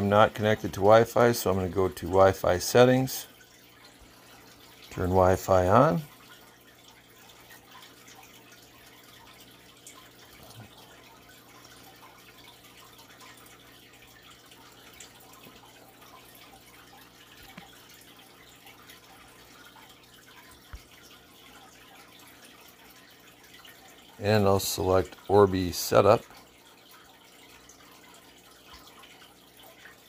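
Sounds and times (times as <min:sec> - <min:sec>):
water trickling and dripping: 0:00.0 - 0:30.0.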